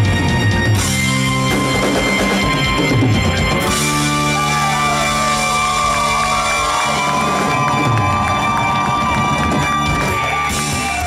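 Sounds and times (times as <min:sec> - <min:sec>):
live rock band: 0:00.0 - 0:11.0
audience cheering: 0:03.8 - 0:11.0.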